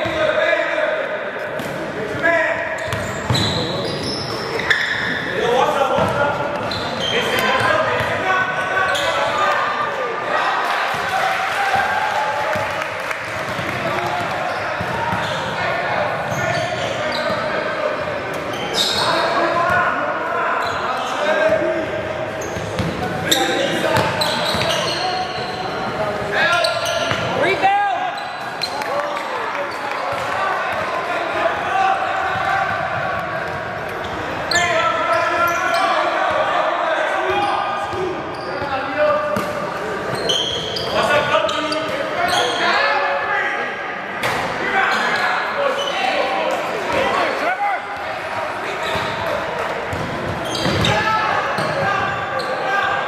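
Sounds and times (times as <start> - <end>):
indistinct shouts and talk: 0.0 - 53.0.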